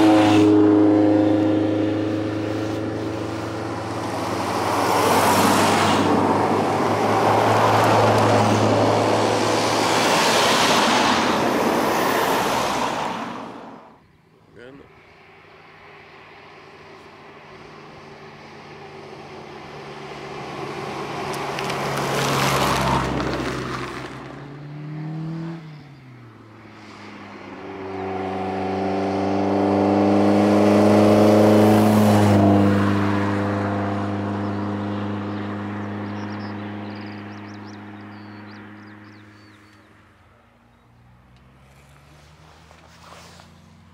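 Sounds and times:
rally cars driving past: 0.0s - 14.0s, 14.6s - 43.9s.

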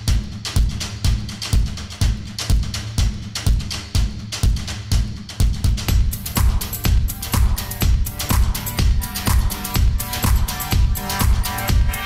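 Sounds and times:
driving drum beat: 0.0s - 12.0s
sustained low bass: 5.9s - 12.0s.

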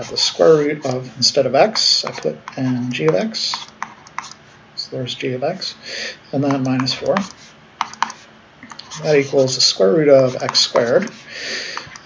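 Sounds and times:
stylus tapping on a tablet: 6.4s - 8.8s.

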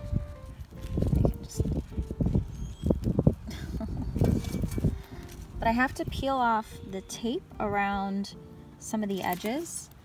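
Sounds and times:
low rumbling background: 0.0s - 9.3s
woman laughing breathily: 3.4s - 4.6s.

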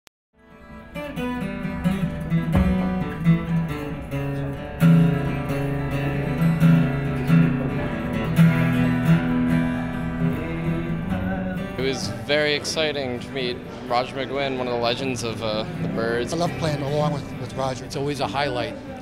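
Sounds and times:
acoustic guitar music: 0.4s - 19.0s.

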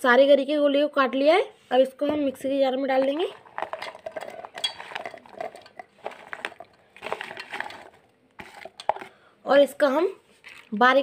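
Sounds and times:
coconut pieces clattering into jar: 3.0s - 9.2s.

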